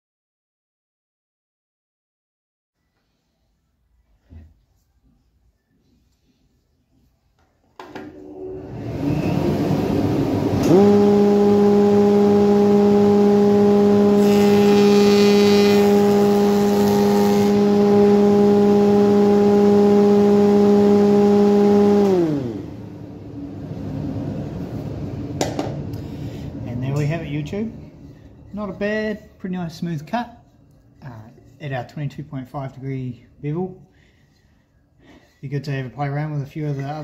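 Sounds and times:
cutters cutting hardwood: 10.6s - 22.6s.

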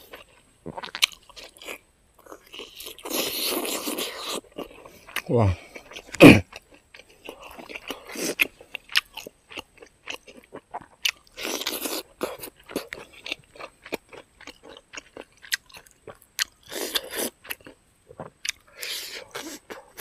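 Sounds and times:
close chewing with wet crunches: 0.0s - 20.0s.

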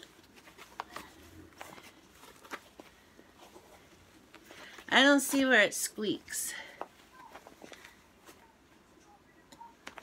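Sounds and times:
plush toy rustling: 0.0s - 5.4s, 6.8s - 8.7s.

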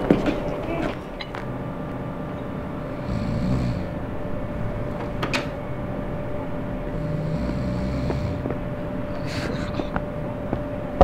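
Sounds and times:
faint hum: 0.0s - 11.0s
low rumble: 1.3s - 11.0s.

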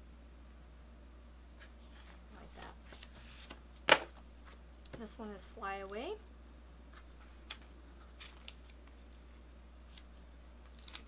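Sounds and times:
paper sticker sheets rustling: 1.6s - 4.6s, 9.9s - 11.0s.

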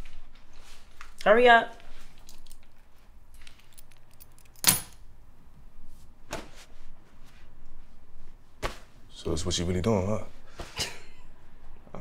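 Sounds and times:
keys clacking onto countertop: 2.1s - 5.0s
keys jingling: 2.1s - 5.0s.

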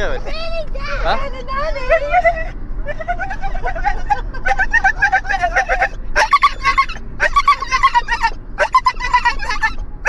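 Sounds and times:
dog yelping: 1.8s - 9.8s.

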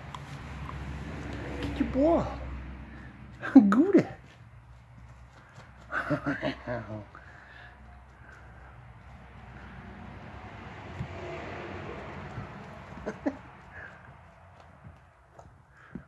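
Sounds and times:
cat scuffling on a rug: 4.0s - 6.2s, 11.9s - 16.0s.

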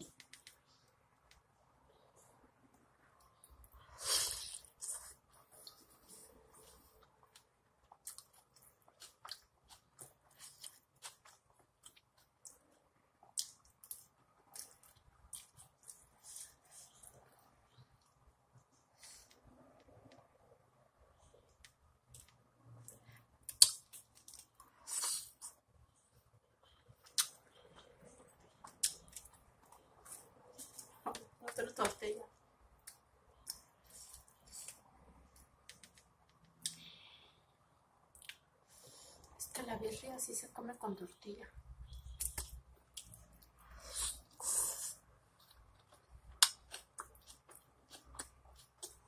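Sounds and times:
person chewing food: 3.2s - 18.1s, 21.5s - 25.6s, 26.7s - 31.3s, 38.1s - 39.3s, 41.9s - 49.0s.

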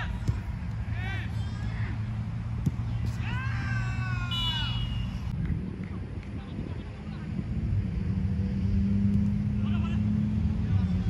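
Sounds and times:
person shouting: 3.2s - 4.9s.

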